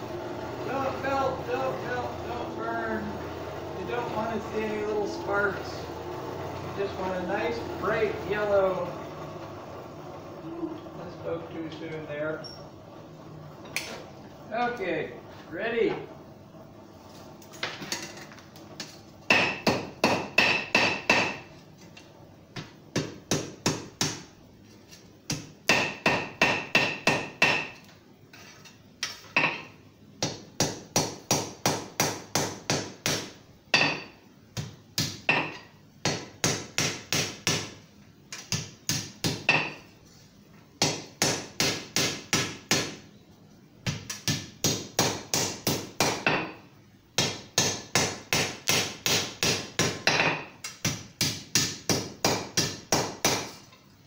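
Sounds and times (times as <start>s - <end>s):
hammer striking steel on anvil: 19.3s - 21.5s, 25.7s - 27.8s, 30.6s - 34.2s, 47.2s - 50.5s.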